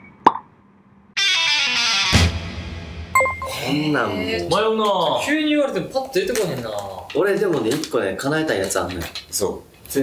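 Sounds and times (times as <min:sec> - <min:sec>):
music jingle: 0:03.1 - 0:04.3.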